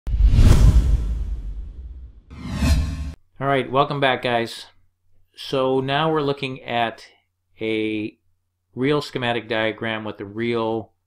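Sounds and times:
whoosh with deep rumble: 0:00.1 - 0:03.2.

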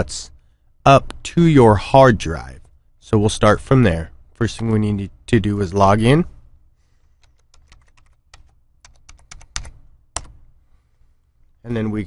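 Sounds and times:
computer keyboard typing: 0:07.1 - 0:10.4.

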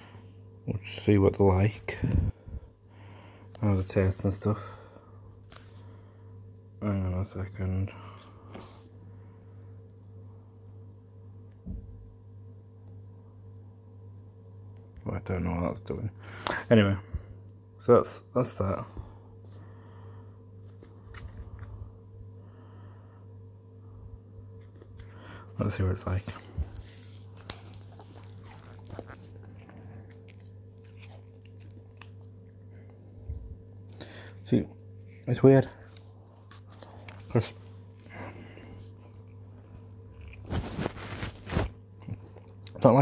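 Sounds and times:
steady low hum: 0:00.0 - 0:43.0
wet chewing noises: 0:27.3 - 0:32.6.

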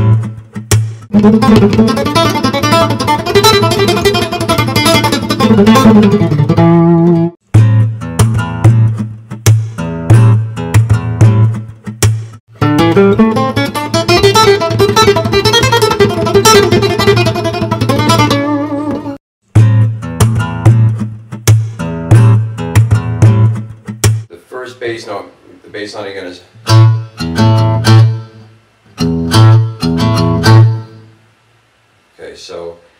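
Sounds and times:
percussive hits on guitar body: 0:00.0 - 0:02.8, 0:07.5 - 0:12.4, 0:19.5 - 0:24.3
fingerstyle acoustic guitar: 0:00.0 - 0:24.3, 0:26.6 - 0:31.1.

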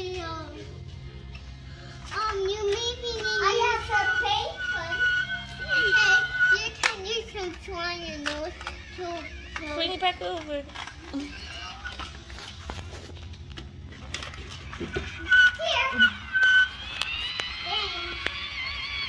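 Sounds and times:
plastic toy pieces clicking: 0:08.1 - 0:11.2.

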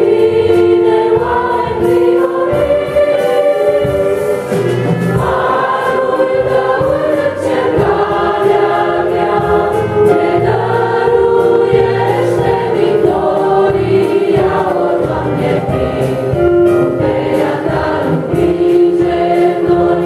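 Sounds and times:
women's choir singing a hymn: 0:00.0 - 0:04.6, 0:05.2 - 0:20.0
electronic keyboard accompaniment: 0:00.0 - 0:20.0.

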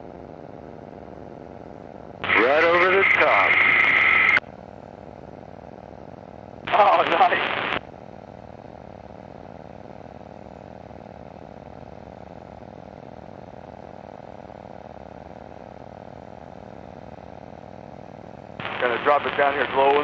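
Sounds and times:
small aircraft engine and propeller: 0:00.0 - 0:20.0.

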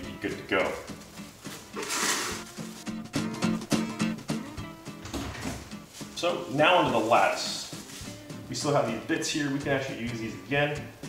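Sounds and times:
background music: 0:00.0 - 0:11.0
plastic wrap tearing: 0:01.5 - 0:02.9.

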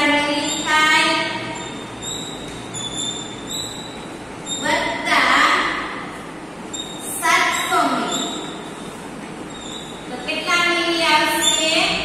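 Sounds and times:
chalk squeaking on a blackboard: 0:00.1 - 0:04.8, 0:06.7 - 0:10.2, 0:11.2 - 0:12.0.

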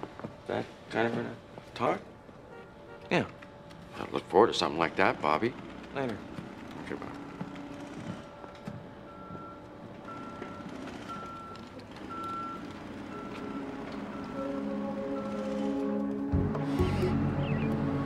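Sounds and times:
soft music tones: 0:13.0 - 0:18.0.

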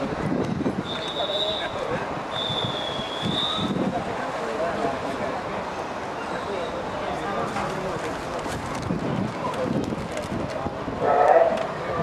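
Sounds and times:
murmur of distant voices: 0:00.0 - 0:12.0
referee's whistle long blast: 0:00.8 - 0:03.8.

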